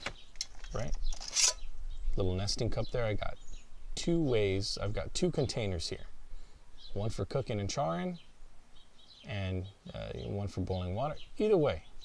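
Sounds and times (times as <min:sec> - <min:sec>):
steel sliding on steel: 0:01.2 - 0:01.6.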